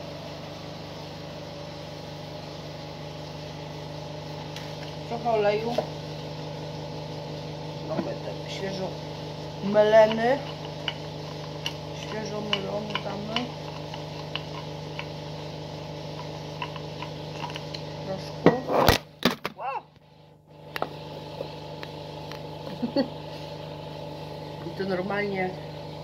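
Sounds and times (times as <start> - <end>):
background hum: 0.0 - 26.0
peppercorns cracking in mill: 7.7 - 19.6.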